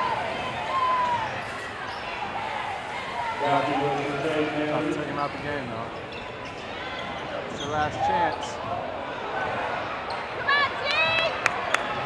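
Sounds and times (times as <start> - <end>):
hum of spectators: 0.0 - 12.0
sneaker squeaks: 0.5 - 2.3, 5.2 - 8.7.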